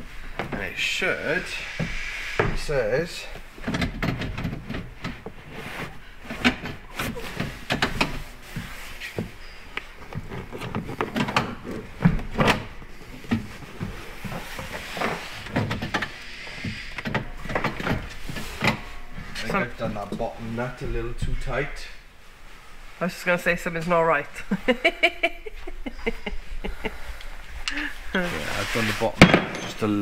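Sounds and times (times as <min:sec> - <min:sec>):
seat frame clunking and knocking: 0:03.6 - 0:05.6, 0:10.0 - 0:18.9.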